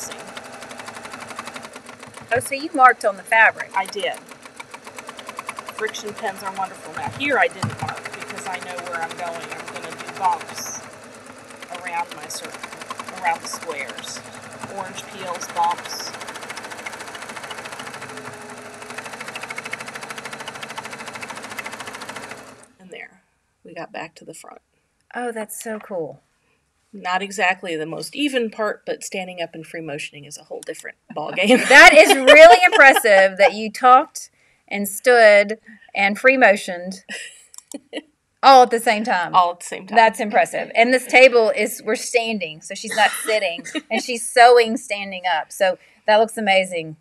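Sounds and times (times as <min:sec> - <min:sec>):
sewing machine running fast: 0:00.0 - 0:22.7, 0:31.4 - 0:33.5.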